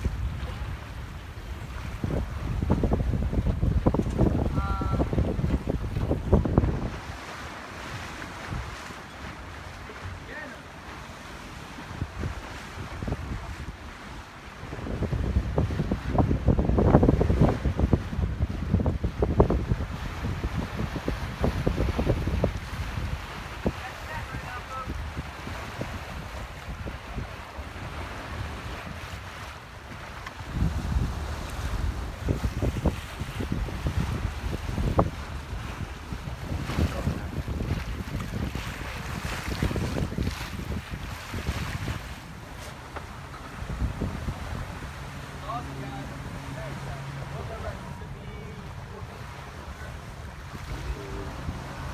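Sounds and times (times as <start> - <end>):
water washing around boat: 0.0 - 51.9
wind buffeting microphone: 0.0 - 51.9.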